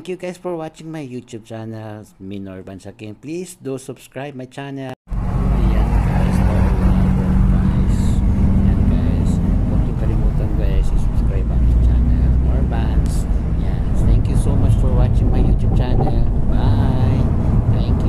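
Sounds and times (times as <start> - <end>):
car driving rumble: 5.1 - 18.0
indistinct voices talking: 5.5 - 17.3.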